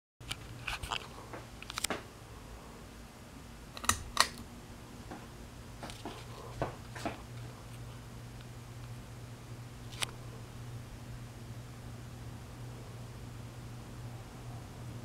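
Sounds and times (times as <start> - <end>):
ceiling fan motor humming: 0.2 - 15.0.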